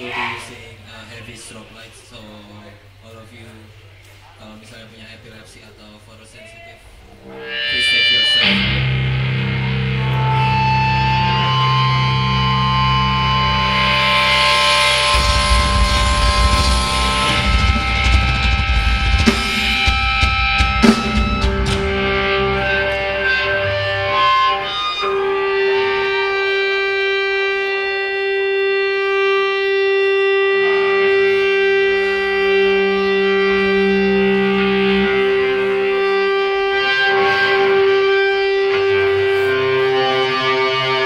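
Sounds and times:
guitar feedback ringing: 6.4s - 41.0s
electric guitars droning chord: 6.9s - 41.0s
bass and drums rumbling: 7.2s - 24.8s.

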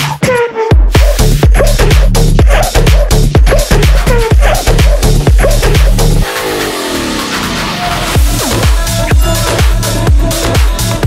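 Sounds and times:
thumping kick drum: 0.0s - 6.2s.

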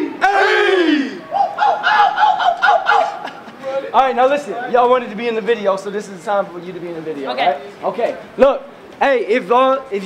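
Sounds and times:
young men shouting: 0.0s - 4.8s.

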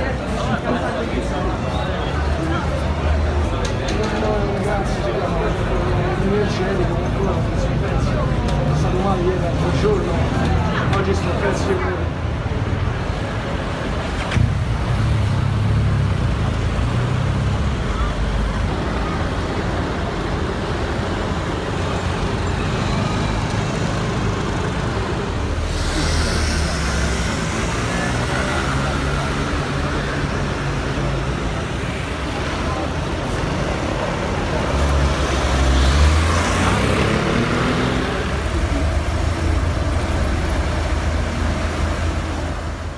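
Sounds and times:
crowd voices: 0.0s - 42.9s
road traffic rumble: 0.0s - 42.9s.

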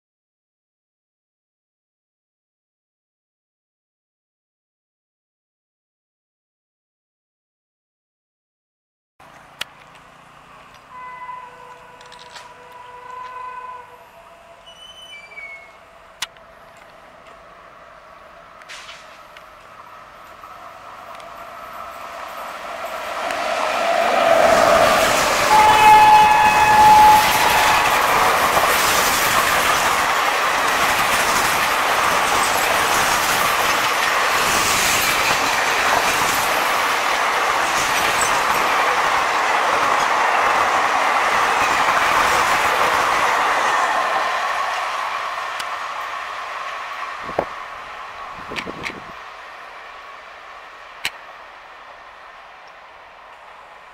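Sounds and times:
train rumbling past: 9.2s - 53.9s
train horn blast: 10.9s - 14.8s, 23.8s - 28.3s.

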